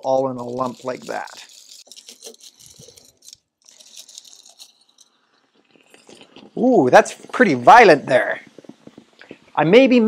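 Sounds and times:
aluminum foil crinkling: 0.0 - 7.5
faint acid hiss: 5.1 - 10.0.

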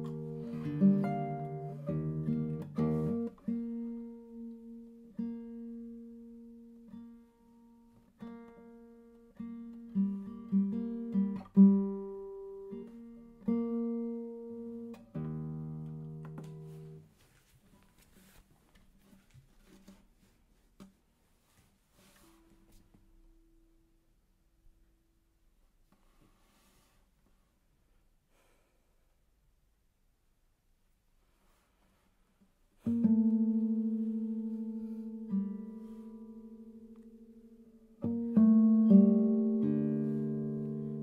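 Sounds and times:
classical guitar slow passage: 0.0 - 17.2, 32.8 - 41.0
faint rustles: 16.3 - 23.1, 31.1 - 32.9.

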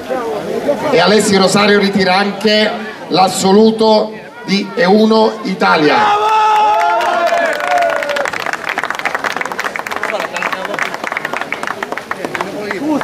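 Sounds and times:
crowd clapping: 6.1 - 13.0.

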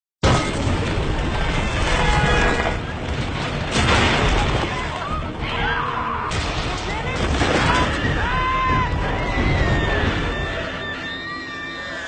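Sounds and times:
crash: 0.2 - 5.3
people screaming: 5.0 - 12.0.

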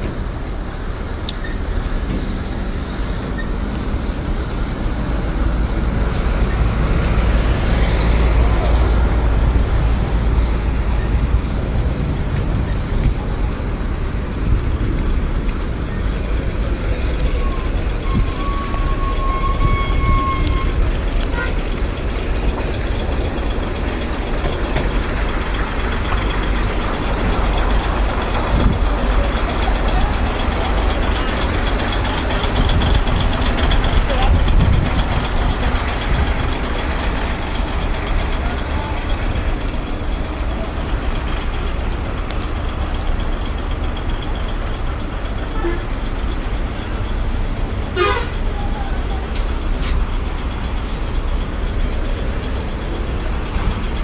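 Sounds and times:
heavy trucks rumbling: 0.0 - 54.0.

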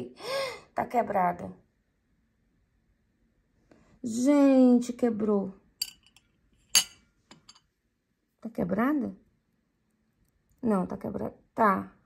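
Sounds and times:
glass spoon clinking on saucer: 5.8 - 7.7.

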